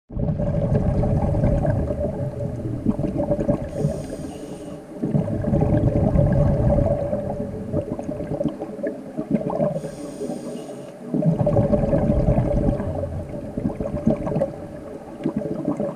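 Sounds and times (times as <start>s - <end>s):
bubbling exhalations: 0.1s - 15.9s
faint steady hum: 0.2s - 15.9s
hissing inhalation through regulator: 3.6s - 5.0s, 9.8s - 11.1s.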